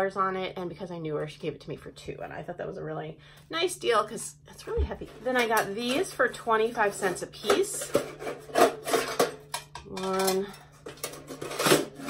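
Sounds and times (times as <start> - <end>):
metal buckets scraping together: 5.1 - 12.0.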